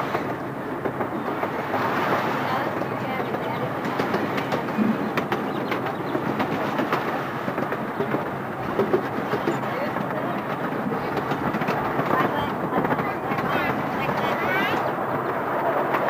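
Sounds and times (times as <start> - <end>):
miniature train rumble: 0.0 - 16.0
wheels clicking on track: 0.0 - 16.0.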